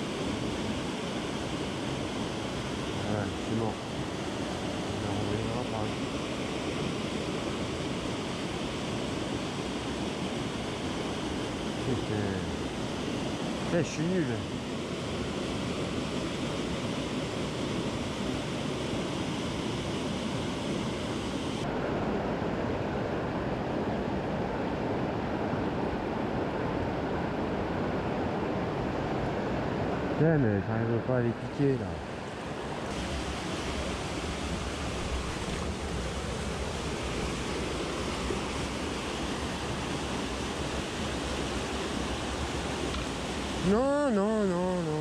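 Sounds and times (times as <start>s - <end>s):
mountain stream rushing over cascade: 0.0s - 23.4s, 24.0s - 45.0s.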